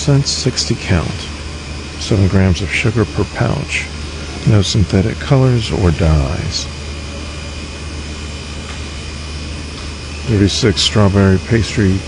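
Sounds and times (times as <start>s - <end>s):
building ventilation hum: 0.0s - 12.0s.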